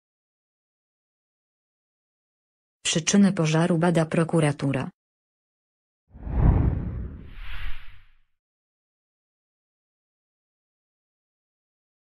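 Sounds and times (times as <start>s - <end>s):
deep whoosh: 6.2s - 8.1s.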